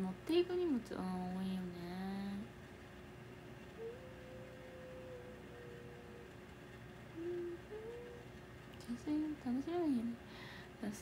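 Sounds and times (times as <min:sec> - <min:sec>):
woman humming: 0:03.8 - 0:06.4, 0:07.2 - 0:10.2.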